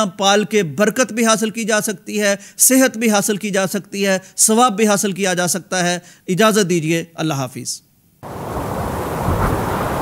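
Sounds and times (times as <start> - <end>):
rushing whoosh: 8.3 - 10.0.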